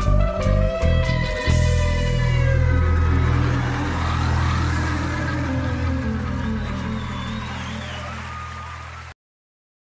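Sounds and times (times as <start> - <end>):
backing track music: 0.0 - 9.1
electric bass guitar sustained notes: 0.0 - 9.1.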